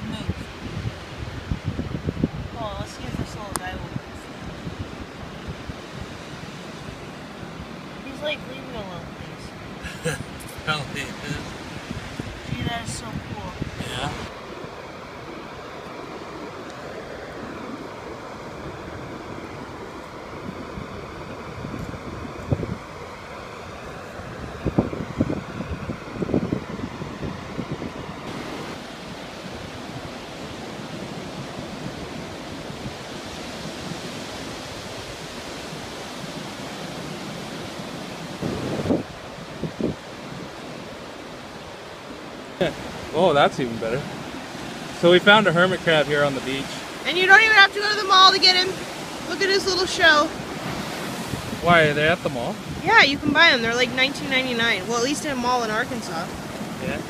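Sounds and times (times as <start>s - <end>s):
ocean surf on beach: 0.0s - 57.0s
wind rumble on microphone: 0.0s - 57.0s.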